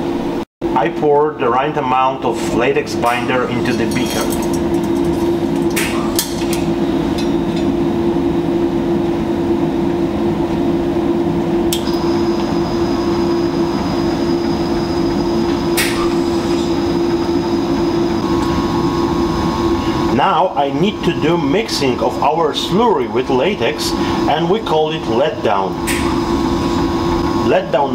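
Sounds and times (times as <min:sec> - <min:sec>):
lab equipment humming: 0:01.4 - 0:27.9.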